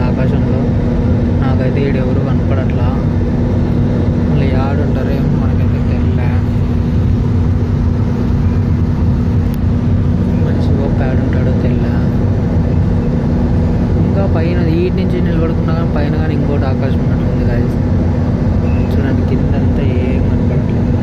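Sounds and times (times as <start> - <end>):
constant low hum: 0.0 - 21.0
jet engines droning: 0.0 - 21.0
rushing air in cabin: 0.0 - 21.0.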